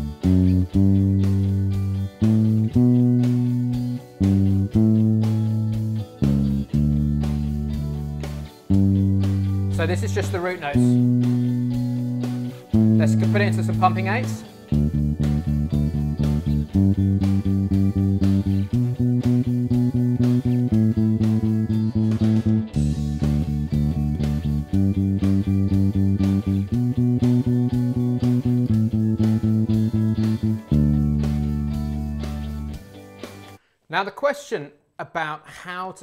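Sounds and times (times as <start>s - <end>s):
electric bass playing eighth notes: 0.0s - 32.8s
country backing track: 0.0s - 33.6s.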